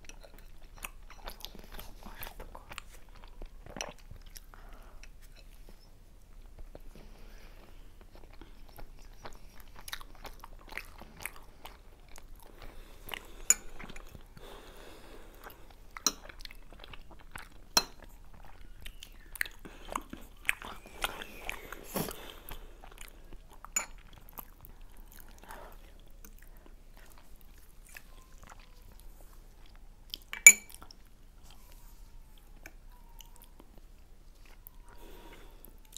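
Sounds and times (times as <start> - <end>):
people chewing dumplings: 0.0 - 35.9
wet mouth sounds: 18.3 - 23.7.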